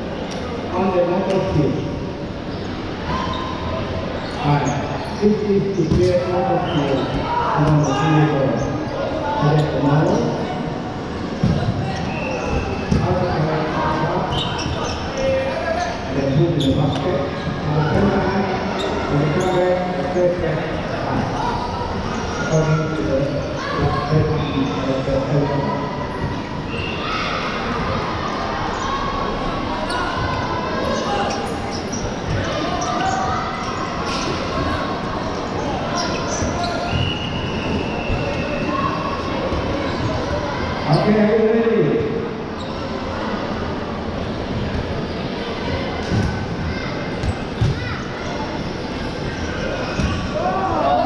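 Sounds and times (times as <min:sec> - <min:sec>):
players shouting and chattering: 0:00.0 - 0:51.0
balls bouncing on hall floor: 0:05.8 - 0:07.9, 0:11.4 - 0:13.7, 0:46.0 - 0:48.0.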